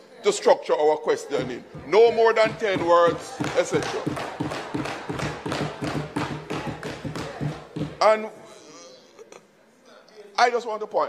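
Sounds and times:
people thumping desks: 1.3 - 8.1.

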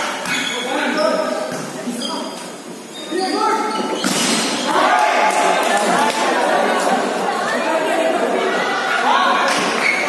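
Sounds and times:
echoing crowd chatter: 0.0 - 10.0.

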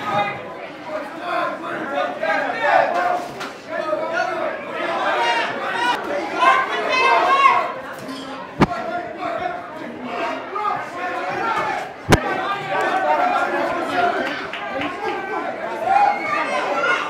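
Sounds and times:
crowd chatter in large hall: 0.0 - 17.0.

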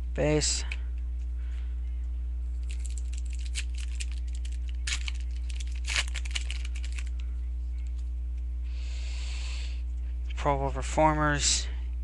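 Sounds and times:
low electrical hum: 0.0 - 12.0
wrapper crinkling: 2.5 - 7.2.

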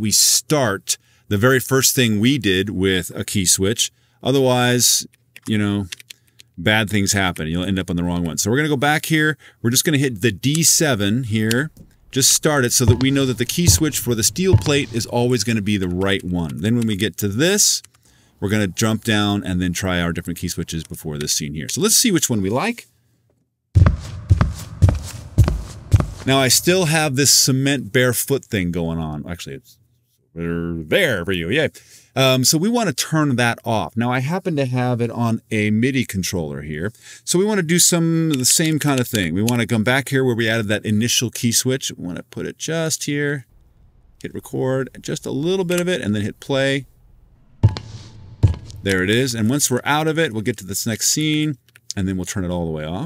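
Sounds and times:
barefoot footsteps on cement: 11.7 - 15.2, 23.8 - 27.0, 47.6 - 49.1.

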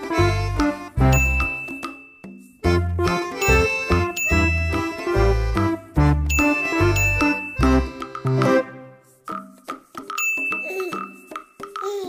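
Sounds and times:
chiming bell tones: 1.1 - 2.5, 3.4 - 5.0, 6.3 - 8.0, 10.2 - 11.6.

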